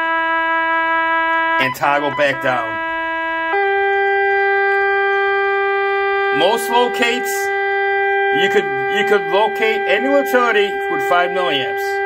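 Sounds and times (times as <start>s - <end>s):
transmitter buzzing tone: 0.0s - 12.0s.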